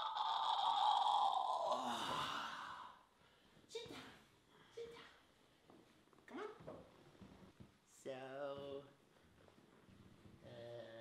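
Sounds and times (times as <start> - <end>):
person sighing: 0.0 - 3.0.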